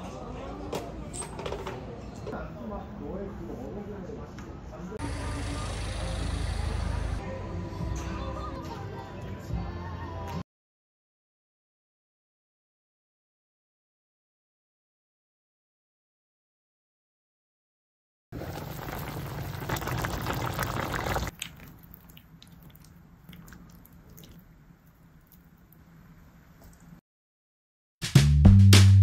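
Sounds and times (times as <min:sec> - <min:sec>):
street rumble: 0:05.0 - 0:07.8
stew bubbling in a pan: 0:18.4 - 0:25.9.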